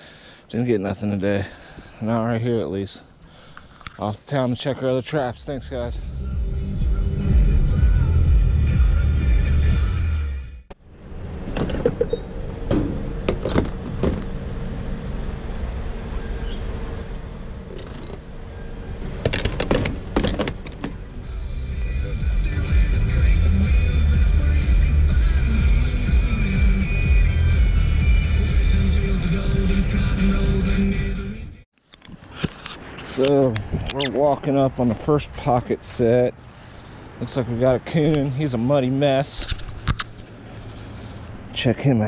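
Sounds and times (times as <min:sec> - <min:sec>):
engine and road rumble: 0:00.0 - 0:42.0
music playing: 0:05.9 - 0:10.6, 0:21.2 - 0:31.6.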